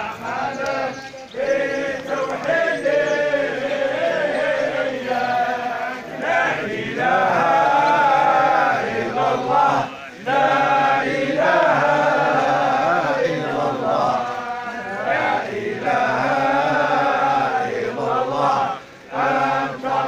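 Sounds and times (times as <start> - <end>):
men chanting in unison: 0.0 - 20.0.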